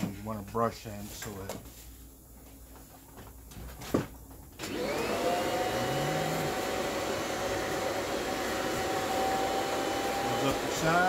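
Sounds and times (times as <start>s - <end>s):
vacuum cleaner motor whine: 4.6s - 11.0s.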